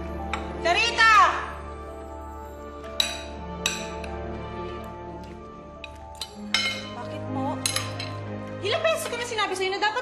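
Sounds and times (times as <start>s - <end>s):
background music: 0.0s - 10.0s
cutlery clinking on plates: 3.0s - 4.2s, 5.8s - 7.0s, 7.6s - 8.2s.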